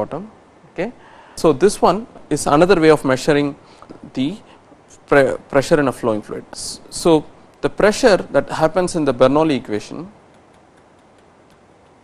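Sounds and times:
steady low hiss: 0.0s - 12.0s
stylus tapping on a pen tablet: 10.3s - 12.0s.

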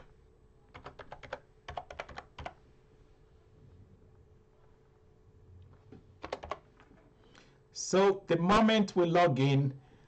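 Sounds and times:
keyboard typing: 0.7s - 2.6s, 6.2s - 6.9s.

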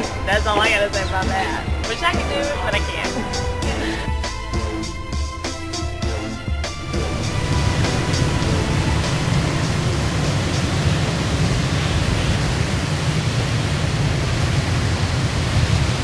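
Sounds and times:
steady rushing rumble: 0.0s - 16.0s.

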